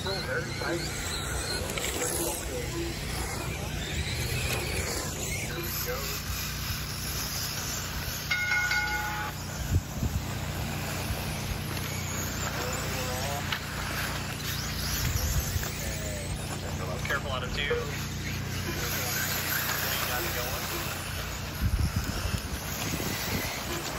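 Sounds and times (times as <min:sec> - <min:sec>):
radio-controlled car motors: 0:00.0 - 0:23.9.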